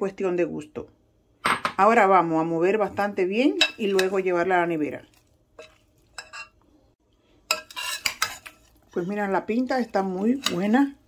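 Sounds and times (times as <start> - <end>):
spoon scraping salad in bowl: 3.6 - 4.3, 5.0 - 6.6, 7.5 - 9.0, 9.6 - 11.0.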